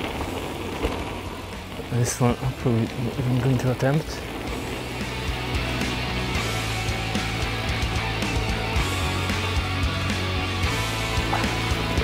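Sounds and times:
bike tyres rolling on dirt: 0.0 - 12.0.

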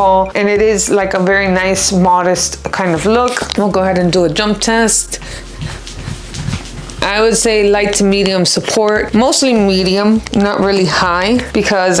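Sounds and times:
breathy huffs: 5.1 - 6.3
fabric rustling on microphone: 5.4 - 7.1.

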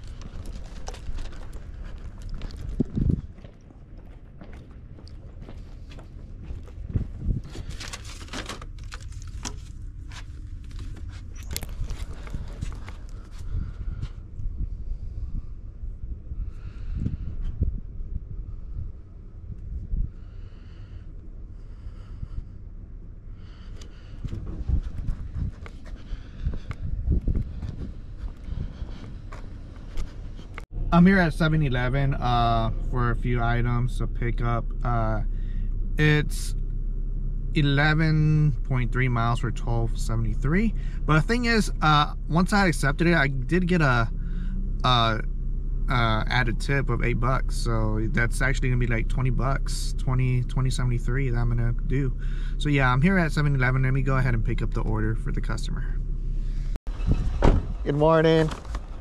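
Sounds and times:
footsteps on concrete: 0.0 - 7.7, 23.8 - 30.6.

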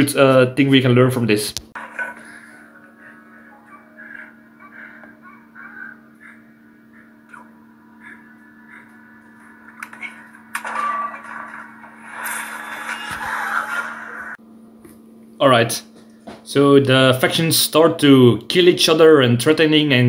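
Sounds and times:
steady low hum: 0.0 - 20.0
fight scene soundtrack on laptop: 1.8 - 14.4.

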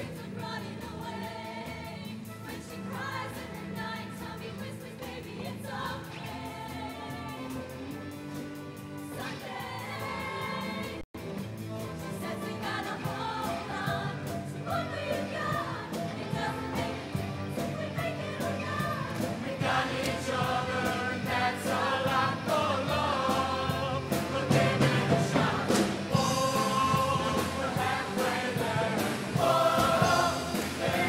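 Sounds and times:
choir singing in harmony: 0.0 - 11.0, 11.6 - 31.0
band accompaniment: 0.0 - 31.0
drum hits: 19.1 - 31.0.

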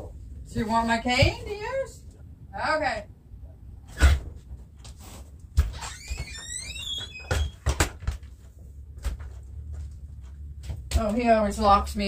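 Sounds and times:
door opening and shutting: 5.6 - 8.0
gliding squeak: 5.7 - 7.6.

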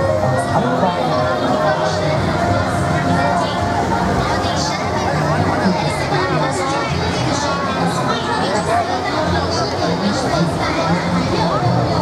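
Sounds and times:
crowd chattering: 0.0 - 12.0
faint music: 0.0 - 12.0.

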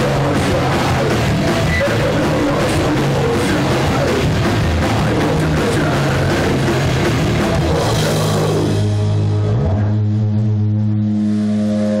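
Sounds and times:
drums and cymbals: 0.0 - 9.5
ringing guitar and bass chord: 0.0 - 12.0.

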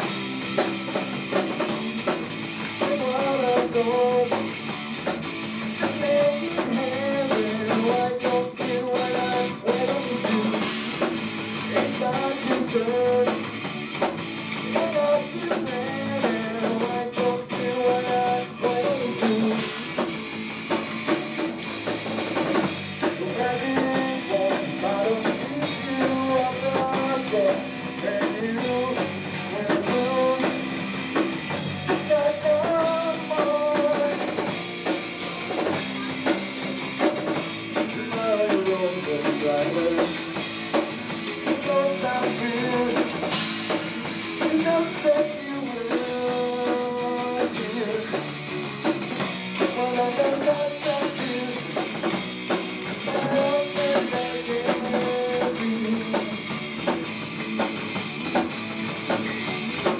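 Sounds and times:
bass guitar: 0.0 - 59.9
drum kit: 0.0 - 59.9
electric guitar: 0.0 - 59.9
person singing into microphone: 2.8 - 4.5, 5.8 - 10.7, 11.7 - 13.4, 14.7 - 19.8, 23.2 - 30.7, 32.0 - 34.4, 37.9 - 40.2, 41.5 - 43.2, 44.4 - 48.2, 49.7 - 51.9, 53.0 - 56.4.

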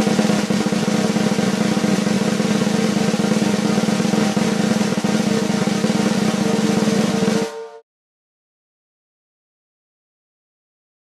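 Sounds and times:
snare drum roll: 0.0 - 7.8.

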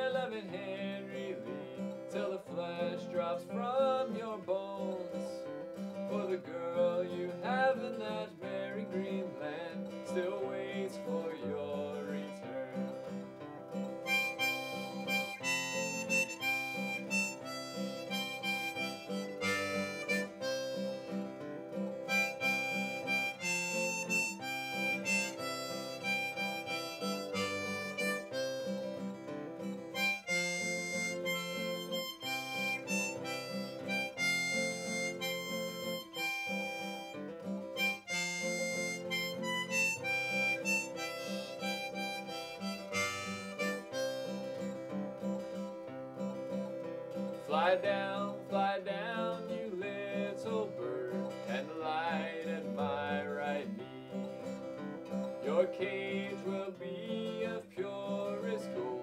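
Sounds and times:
harmonica folk melody: 0.0 - 59.0
strummed acoustic guitar: 0.0 - 59.0.

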